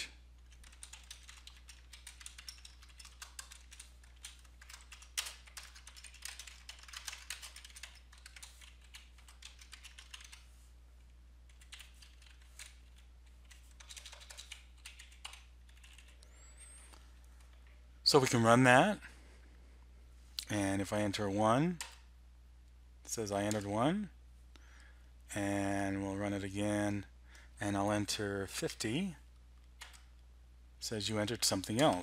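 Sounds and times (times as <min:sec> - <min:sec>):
faint typing on keyboard: 0:00.0 - 0:17.8, 0:21.1 - 0:22.1, 0:23.3 - 0:23.9, 0:28.6 - 0:30.2, 0:31.2 - 0:32.0.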